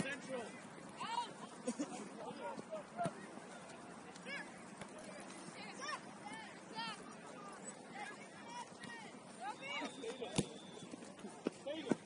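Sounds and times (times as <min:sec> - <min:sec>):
players shouting: 0:00.0 - 0:10.9.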